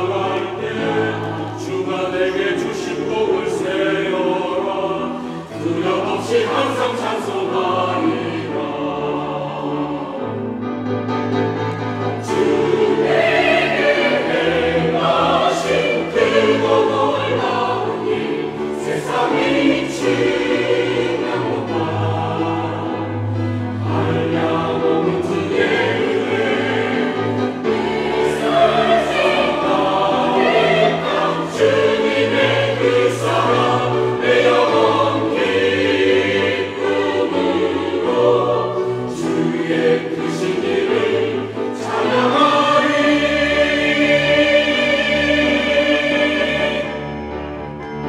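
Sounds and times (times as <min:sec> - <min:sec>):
choir singing in harmony: 0:00.0 - 0:48.0.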